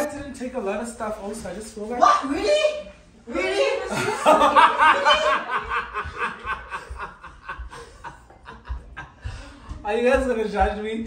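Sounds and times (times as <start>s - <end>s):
man laughing heartily: 3.9s - 9.3s.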